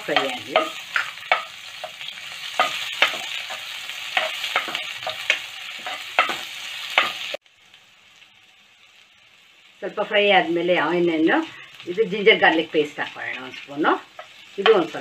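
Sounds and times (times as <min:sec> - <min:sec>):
spoon scraping a pan: 0:00.0 - 0:07.3
onions sizzling in oil: 0:00.0 - 0:15.0.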